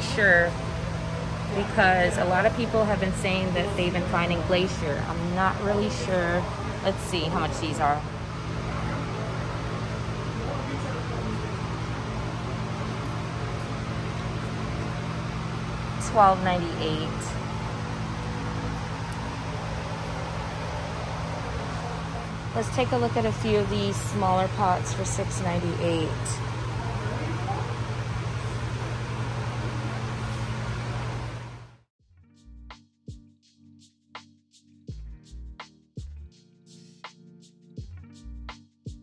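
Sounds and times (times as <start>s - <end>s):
machinery hum and hiss: 0.0s - 31.7s.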